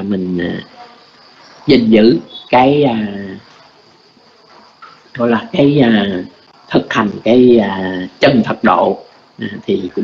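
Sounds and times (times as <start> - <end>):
background hiss: 0.0 - 10.0
faint high-pitched tone: 0.0 - 10.0.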